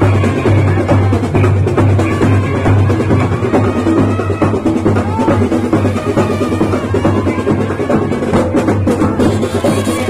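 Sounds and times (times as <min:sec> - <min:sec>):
drums beating: 0:00.0 - 0:10.0
trumpets: 0:00.0 - 0:10.0.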